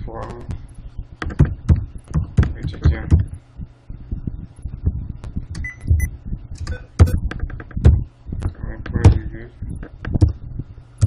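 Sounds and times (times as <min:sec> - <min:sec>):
heavier thumps: 0:01.2 - 0:06.1, 0:06.7 - 0:09.3.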